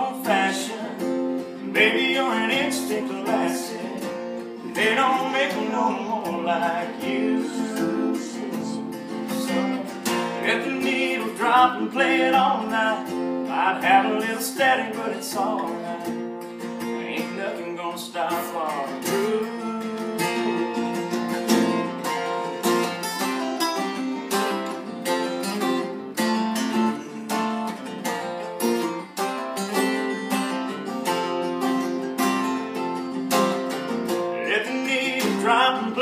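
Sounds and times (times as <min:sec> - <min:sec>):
acoustic guitar lead line: 0:00.0 - 0:36.0
acoustic guitar strumming chords: 0:00.0 - 0:36.0.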